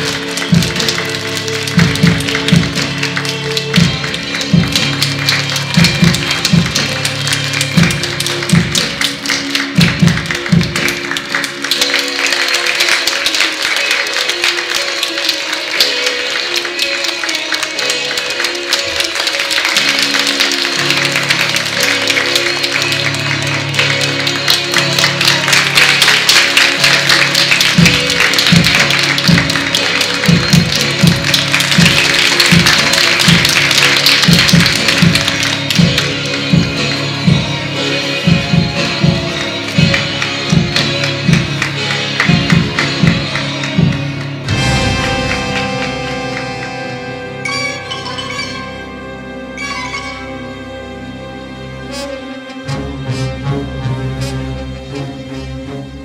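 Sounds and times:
recorded music with drumbeat: 0.0 - 12.0, 23.8 - 46.1
applause: 0.0 - 48.7.

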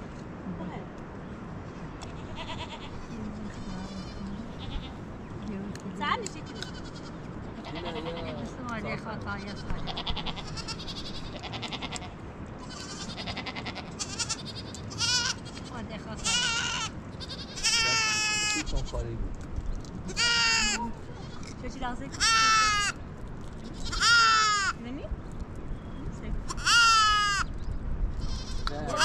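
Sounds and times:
goat bleating: 2.0 - 5.1, 6.3 - 19.0, 20.0 - 24.8, 26.4 - 27.5, 28.2 - 29.0.

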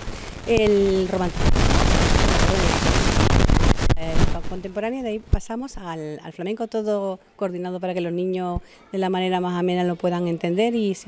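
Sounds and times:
microphone handling noise: 0.0 - 4.7
woman speaking: 0.4 - 1.5, 2.2 - 2.8, 4.0 - 11.0.

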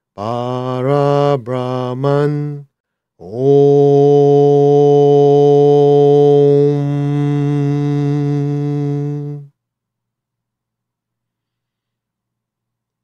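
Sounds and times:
man chanting om: 0.2 - 2.6, 3.2 - 9.5.

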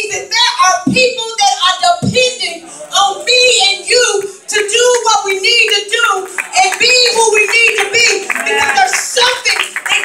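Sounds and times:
woman preaching into a microphone: 0.0 - 10.0
congregation clapping: 5.6 - 10.0.

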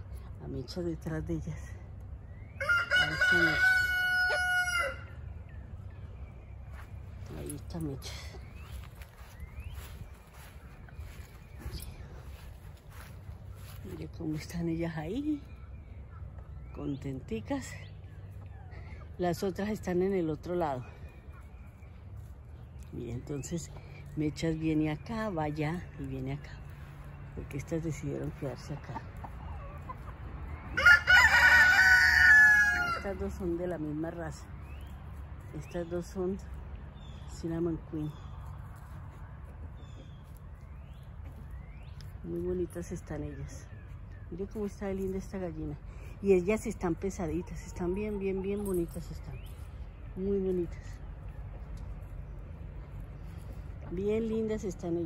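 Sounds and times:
rooster crowing: 2.6 - 5.1, 30.8 - 33.0.

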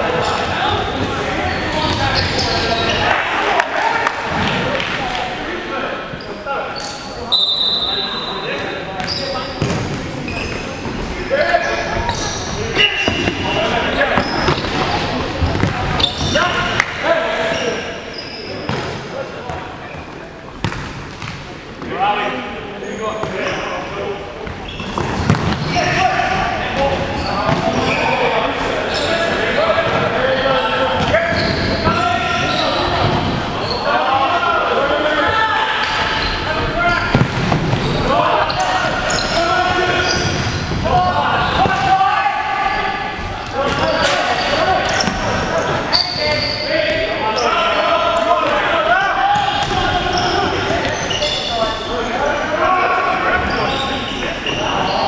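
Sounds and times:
players shouting in echoing hall: 0.0 - 55.0.

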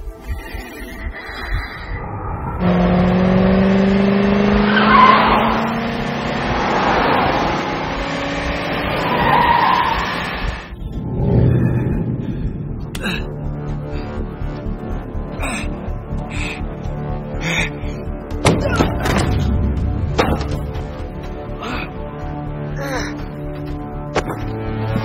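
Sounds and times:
car engines revving: 1.9 - 12.8.

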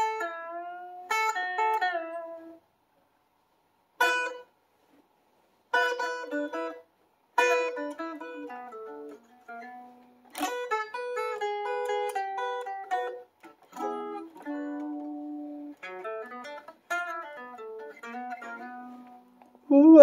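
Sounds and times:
electric guitar blues licks: 0.0 - 2.6, 4.0 - 4.5, 5.7 - 6.8, 7.4 - 19.7.

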